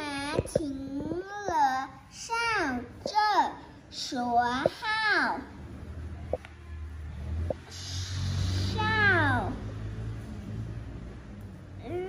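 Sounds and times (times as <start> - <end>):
low steady hum: 0.0 - 12.0
child making a hissing sh sound: 7.7 - 9.0.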